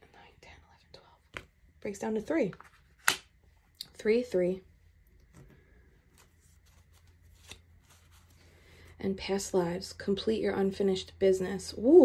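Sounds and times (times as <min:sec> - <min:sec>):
cards flicking and rustling: 0:02.6 - 0:03.4, 0:05.2 - 0:08.4.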